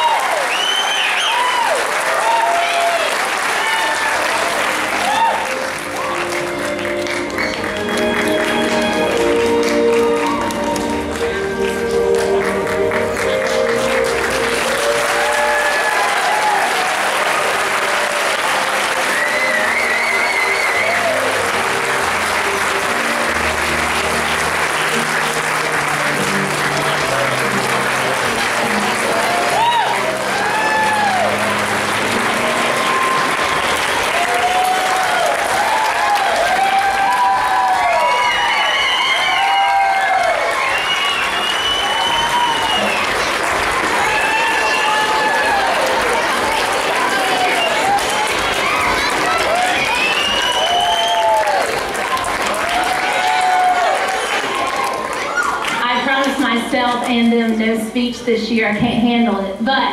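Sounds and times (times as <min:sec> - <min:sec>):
whoops and cheers: 0:00.0 - 0:06.3, 0:14.6 - 0:21.8, 0:28.8 - 0:55.8
audience applauding: 0:00.0 - 0:57.6.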